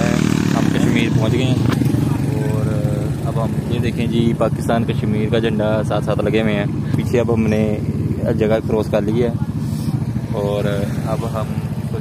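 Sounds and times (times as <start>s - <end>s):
motorcycle engine running: 0.0s - 12.0s
voices talking: 0.0s - 12.0s.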